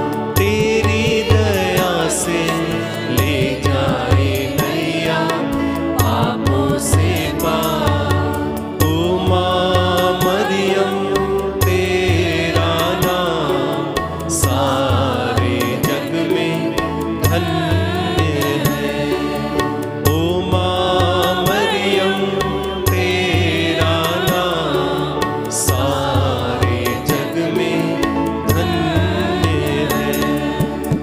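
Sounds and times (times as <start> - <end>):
women singing a hymn: 1.1 - 13.8, 14.6 - 19.6, 20.4 - 31.0.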